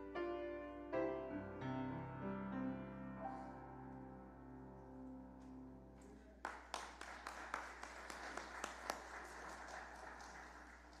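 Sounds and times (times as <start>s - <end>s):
audience clapping: 6.0s - 11.0s.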